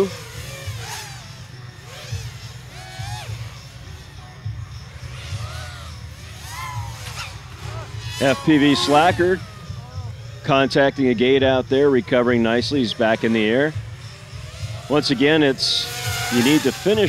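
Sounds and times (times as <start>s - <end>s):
quadcopter motors whining: 0.0s - 17.0s.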